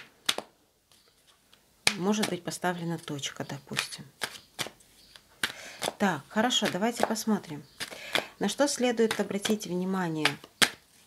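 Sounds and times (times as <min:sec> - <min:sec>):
person speaking: 0:01.8 - 0:04.2, 0:05.4 - 0:10.5.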